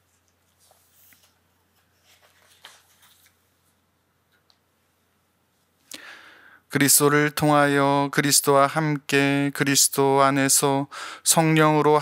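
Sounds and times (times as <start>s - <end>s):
soft rustle: 0.0s - 3.9s.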